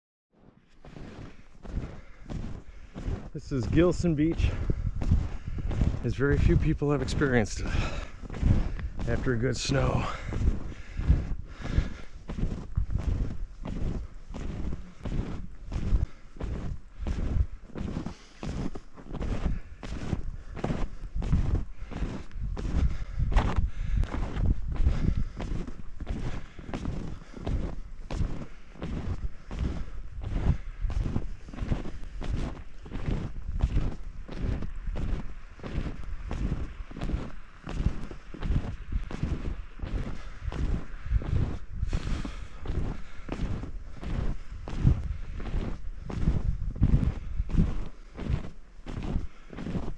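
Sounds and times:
snowshoe footsteps crunching on snow: 0.4 - 49.9.

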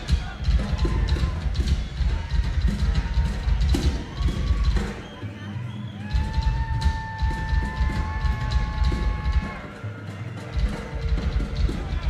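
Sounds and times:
fast bass drum beats: 0.0 - 5.1, 6.0 - 9.8, 10.5 - 12.0
live rock band playing: 0.0 - 5.3, 6.0 - 12.0.

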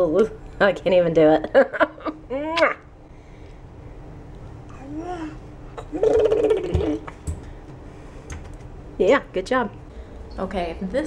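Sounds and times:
baby making buzzing sound: 4.8 - 7.0.

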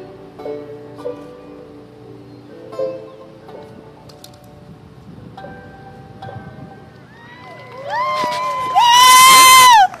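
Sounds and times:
faint crowd cheering: 7.0 - 10.0
person whooping: 7.1 - 10.0.

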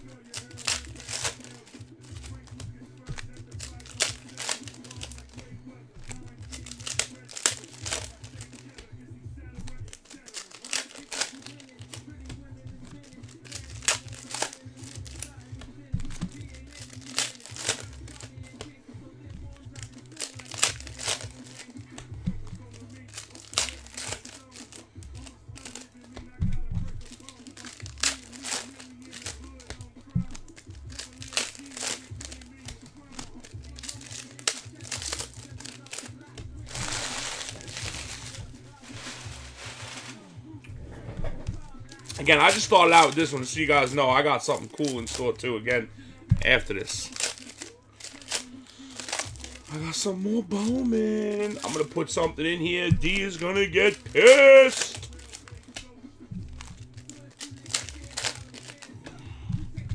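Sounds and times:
card pack wrappers crinkling: 0.0 - 40.4, 41.5 - 59.9
cards being handled: 0.0 - 40.5, 41.1 - 59.9
music: 0.0 - 59.9.

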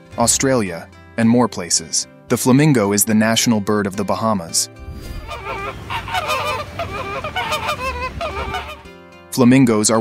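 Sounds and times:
flamingos honking: 5.0 - 8.9.

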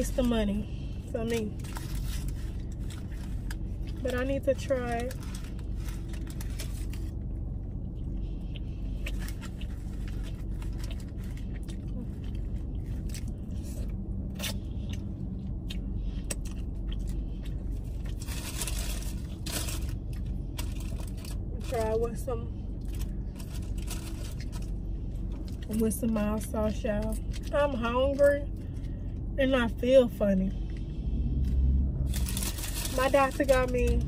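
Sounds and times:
low rumble: 0.0 - 34.0
food crunching: 8.5 - 21.5.

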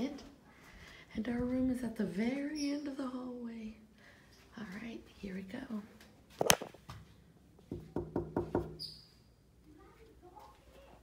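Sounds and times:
knocking on door: 7.7 - 8.8.

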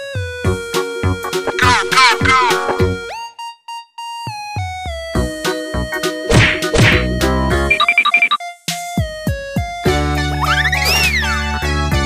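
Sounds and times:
electronic background music: 0.5 - 9.4.

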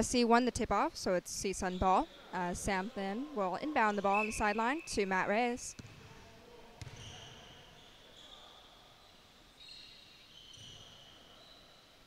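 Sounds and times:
sneaker squeaks on gym floor: 3.9 - 5.0, 5.7 - 6.1, 6.8 - 12.0
basketball thud: 5.8 - 6.1, 6.8 - 7.0.

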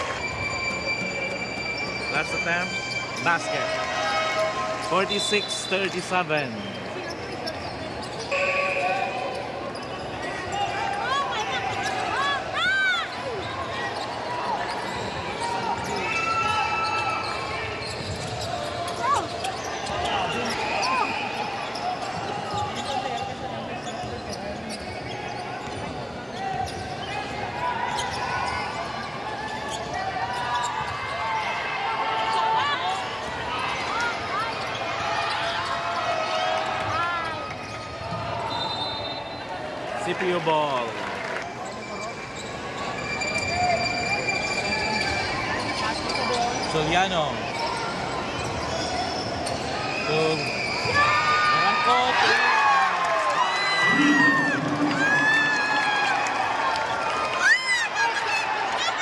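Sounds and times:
sneaker squeaks: 0.0 - 31.3, 36.8 - 39.5, 41.5 - 51.6
crowd chatter and calls: 0.0 - 59.0.

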